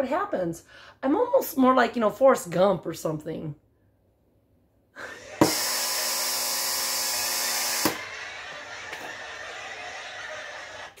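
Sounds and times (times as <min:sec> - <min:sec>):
canned laughter and applause: 0:05.0 - 0:05.6, 0:07.1 - 0:11.0.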